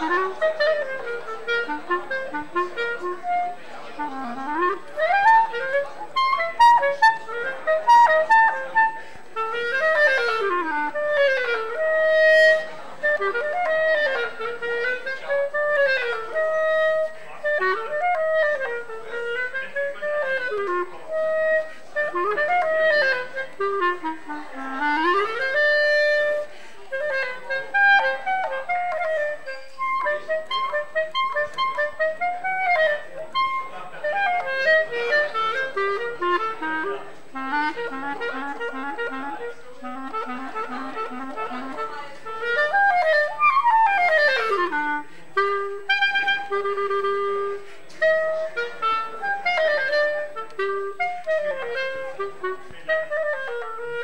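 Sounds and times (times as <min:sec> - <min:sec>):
solo clarinet melody: 0:00.0 - 0:54.0.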